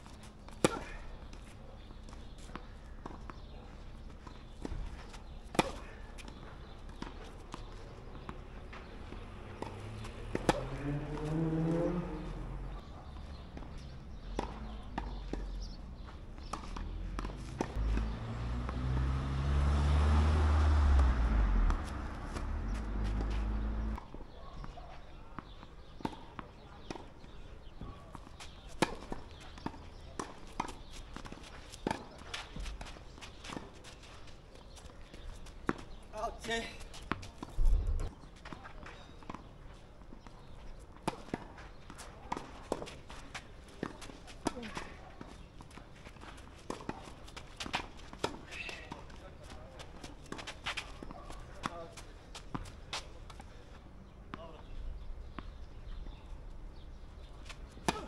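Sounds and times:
tennis balls struck by racquets: 0.0s - 56.2s, 56.8s - 58.0s
low rumble with shifting tones: 17.2s - 24.0s.

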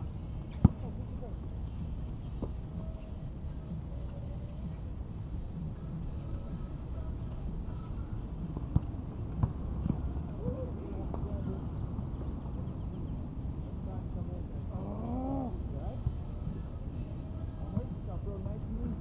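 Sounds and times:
distant players calling out: 14.7s - 16.1s.

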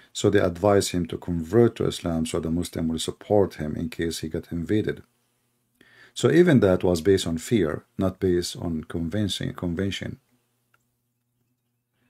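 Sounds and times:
faint steady hum: 0.0s - 12.0s
man speaking: 0.1s - 5.1s, 6.2s - 10.2s.

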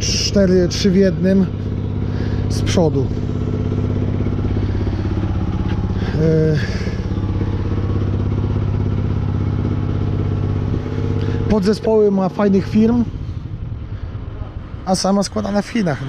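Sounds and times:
engine idling: 0.0s - 16.0s.

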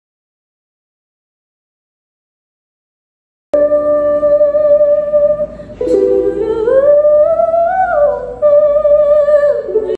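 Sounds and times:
woman singing high sustained note: 3.6s - 9.9s.

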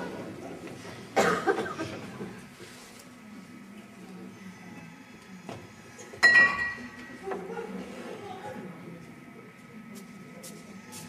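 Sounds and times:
person coughing: 1.2s - 2.0s.

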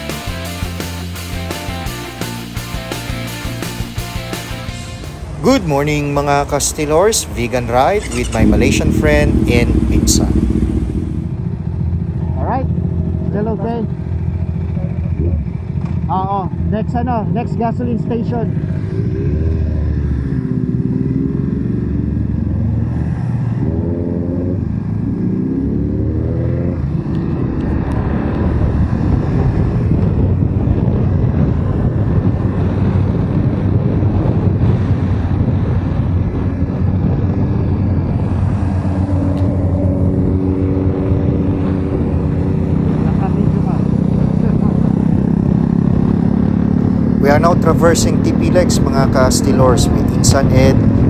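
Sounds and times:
motorcycle engine accelerating: 0.0s - 51.0s
wind rushing over microphone: 5.0s - 51.0s.

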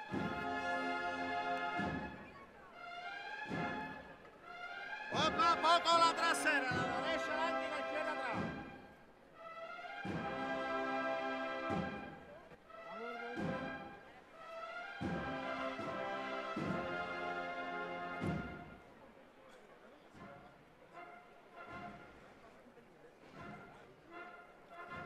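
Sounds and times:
held brass chords: 0.0s - 18.9s, 20.8s - 22.5s, 23.4s - 25.0s
drum stroke: 5.1s - 9.0s, 10.0s - 10.7s, 15.0s - 17.1s, 18.2s - 18.7s.

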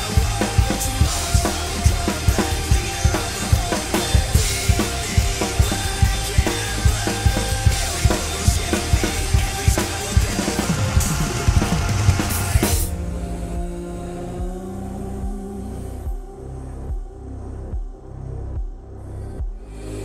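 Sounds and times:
drum kit playing rock beat: 0.0s - 13.8s
electronic rock backing track: 0.0s - 18.8s.

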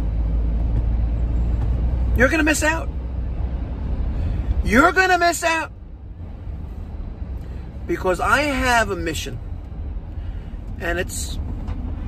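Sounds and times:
vehicle rumble from inside cabin: 0.0s - 12.0s.

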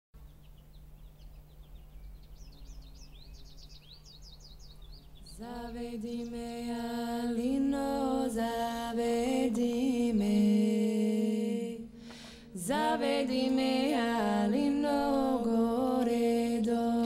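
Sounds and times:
birds chirping: 0.2s - 6.8s.

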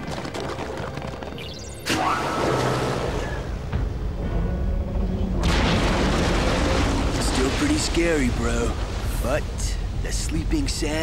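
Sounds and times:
low rumble: 3.0s - 11.0s.

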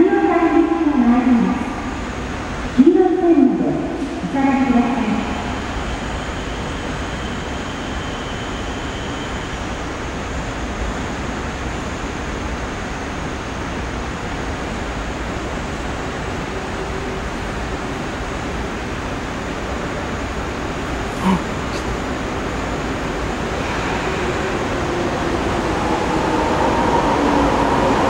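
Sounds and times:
subway platform background noise: 0.0s - 28.0s
faint high whine: 4.3s - 14.2s.

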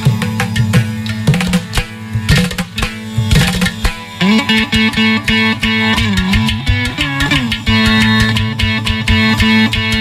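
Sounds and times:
hand drum strokes: 0.0s - 10.0s
veena plucking: 0.0s - 10.0s.

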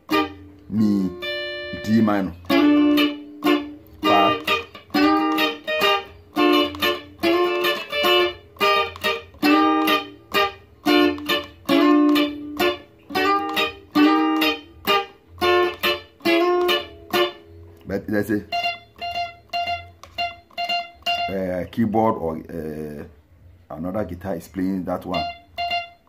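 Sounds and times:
clean electric guitar melody: 0.0s - 23.6s, 25.0s - 26.0s.

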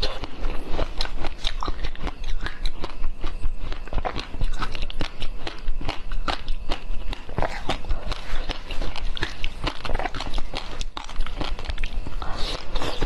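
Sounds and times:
chewing jelly sweet crunches: 0.0s - 13.0s.

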